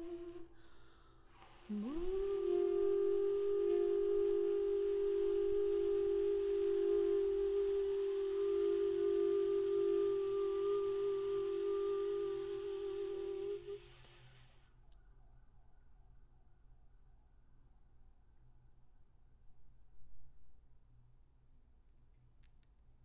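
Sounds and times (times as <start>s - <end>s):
tenor saxophone long note: 0.0s - 14.0s.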